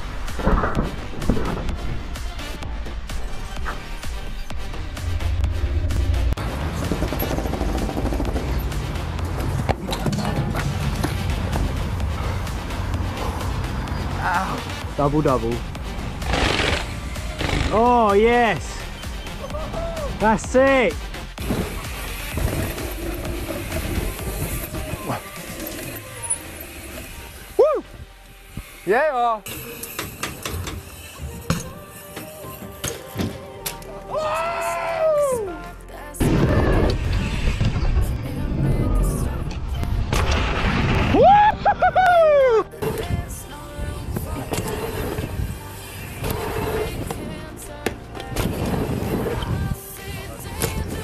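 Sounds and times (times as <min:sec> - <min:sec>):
mountain bike riding noise: 0:00.0 - 0:34.0, 0:41.0 - 0:51.0
background music: 0:00.0 - 0:51.0
person whooping: 0:19.4 - 0:20.1, 0:27.6 - 0:27.9, 0:34.1 - 0:35.6, 0:41.1 - 0:42.7
bike tyre and wind rumble: 0:21.3 - 0:31.9, 0:36.2 - 0:51.0
long pitched shout: 0:27.6 - 0:27.9, 0:34.1 - 0:35.6.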